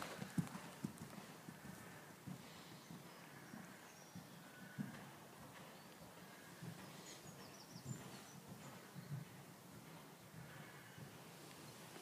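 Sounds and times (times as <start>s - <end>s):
horse hoofbeats on sand: 0.0s - 12.0s.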